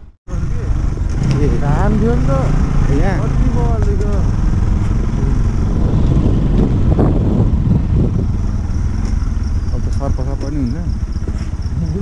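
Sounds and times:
motorcycle engine running: 0.0 - 12.0
wind rumble on microphone: 0.8 - 12.0.

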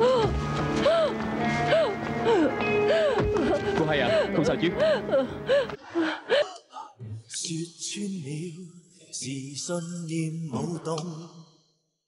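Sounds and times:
woman sobbing and wailing: 0.0 - 6.9.

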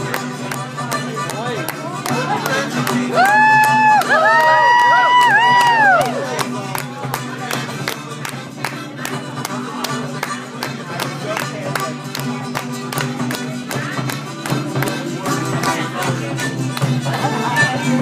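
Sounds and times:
acoustic guitar strumming: 0.0 - 18.0.

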